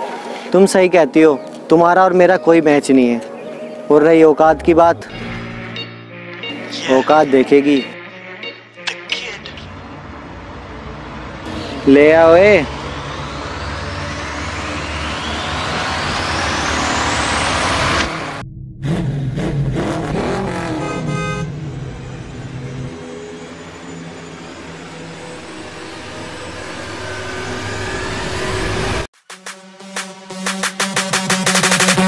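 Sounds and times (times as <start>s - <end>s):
car engine revving: 4.5s - 6.8s, 9.5s - 29.1s
rising whoosh: 10.0s - 20.7s, 21.7s - 29.1s.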